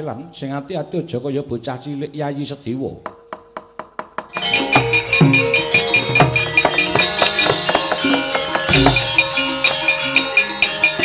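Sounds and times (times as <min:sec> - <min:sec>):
gamelan with metallophones and drum: 0:03.1 - 0:11.0.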